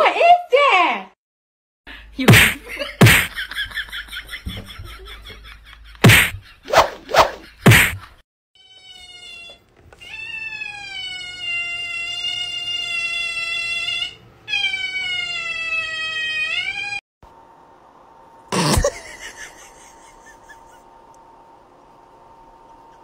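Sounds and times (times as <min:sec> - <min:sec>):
cat yowling: 0:08.6 - 0:17.0.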